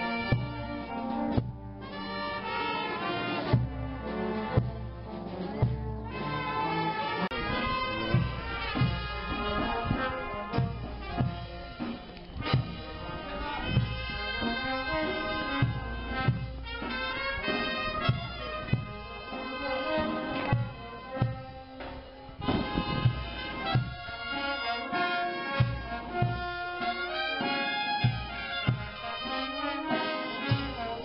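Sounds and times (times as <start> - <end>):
wind and brass band melody: 0.0 - 31.0
bass drum beats: 3.5 - 6.6, 7.4 - 17.3.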